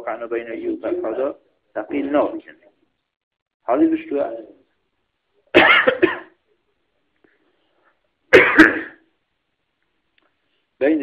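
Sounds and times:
man coughing: 5.5s - 6.4s, 8.3s - 9.1s.

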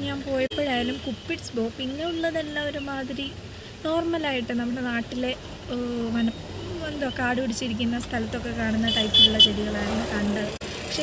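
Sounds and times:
low traffic rumble: 0.0s - 11.0s
vehicle horn beeps: 8.9s - 9.6s.

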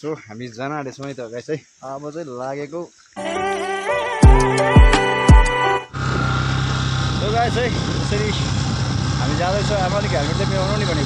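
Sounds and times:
motorcycle engine running: 6.0s - 11.0s.

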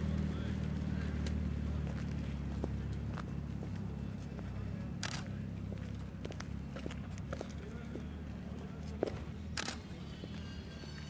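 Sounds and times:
faint voices: 0.0s - 11.0s
footsteps on gravel: 0.2s - 4.6s.

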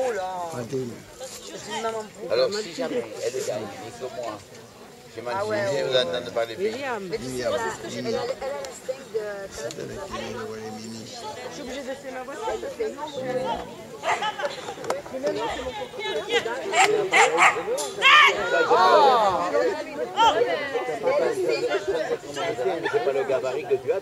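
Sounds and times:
people calling and chattering: 0.0s - 24.0s
dog barking: 16.8s - 17.7s.

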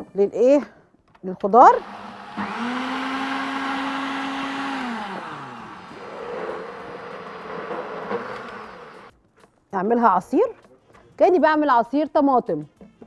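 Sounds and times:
blender running: 1.7s - 9.1s.

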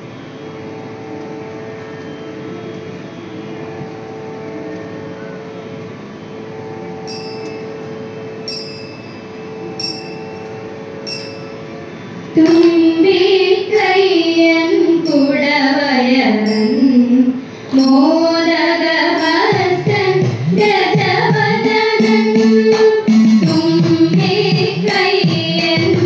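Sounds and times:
steady musical drone: 0.0s - 26.0s
ringing metallic taps: 7.1s - 9.2s, 9.8s - 11.6s
woman singing: 12.4s - 26.0s.

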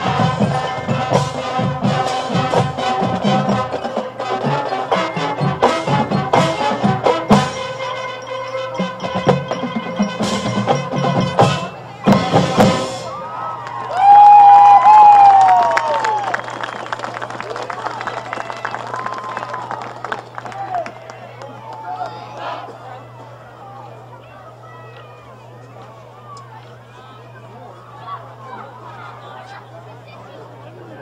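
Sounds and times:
drums and mallet keyboards: 0.0s - 13.2s
marching band playing: 0.0s - 13.4s.

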